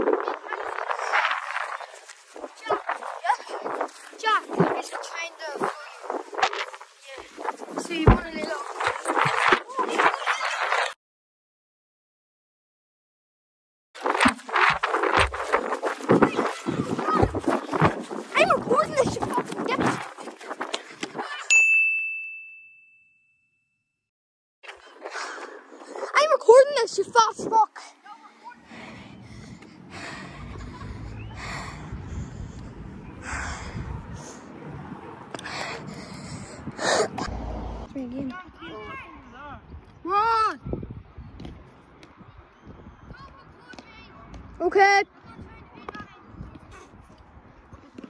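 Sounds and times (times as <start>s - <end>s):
indistinct voices outdoors: 0.0s - 11.0s, 14.1s - 21.5s, 24.7s - 48.0s
high ding: 21.5s - 23.9s.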